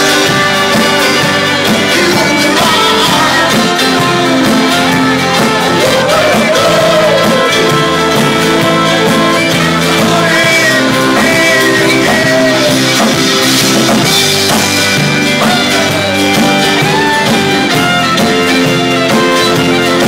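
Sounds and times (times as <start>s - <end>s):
folk-rock band playing: 0.0s - 20.0s.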